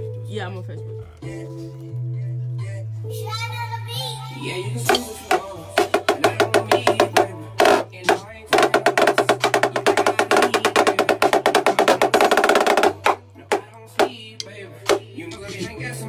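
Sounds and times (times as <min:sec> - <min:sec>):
snare drum strokes: 0:04.9 - 0:15.7.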